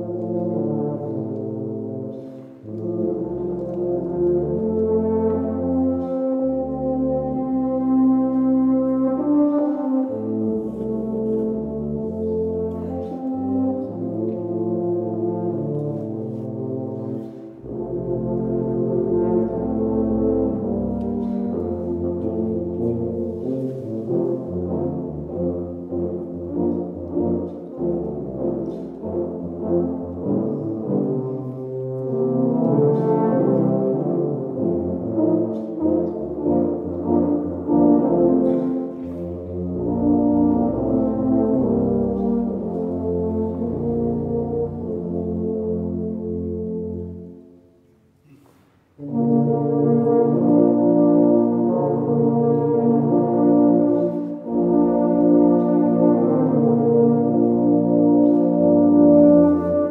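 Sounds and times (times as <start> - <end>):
low brass ensemble playing: 0.0 - 59.9.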